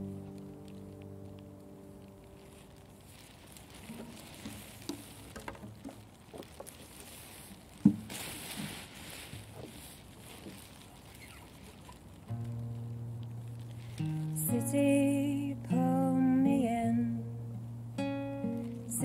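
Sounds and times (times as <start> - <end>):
acoustic guitar playing: 0.0 - 5.8, 12.2 - 19.0
light taps and rustles: 2.5 - 12.6.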